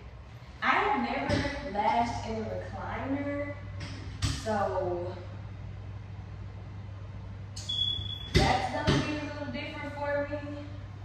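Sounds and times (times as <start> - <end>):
low steady hum: 0.0 - 11.0
high electronic beep: 7.6 - 8.4.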